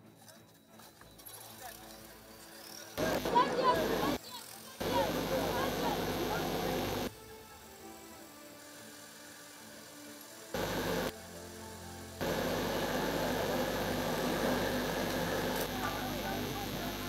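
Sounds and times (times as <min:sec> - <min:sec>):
crowd voices and commotion: 0:02.8 - 0:07.1, 0:12.2 - 0:17.0.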